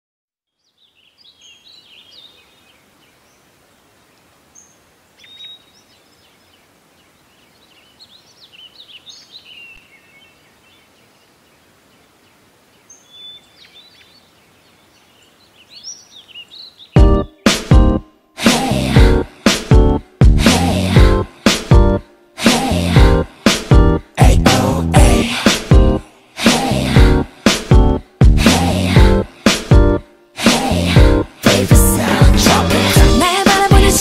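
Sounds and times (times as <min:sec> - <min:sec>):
birds chirping faintly: 0:00.4 - 0:18.0
quiet hiss: 0:00.5 - 0:17.0
loud pop song: 0:17.0 - 0:34.0.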